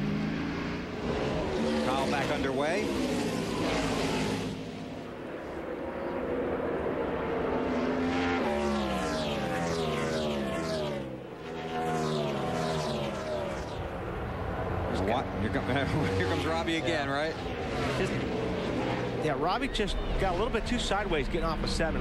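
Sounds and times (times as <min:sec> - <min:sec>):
race car engines: 0:00.0 - 0:22.0.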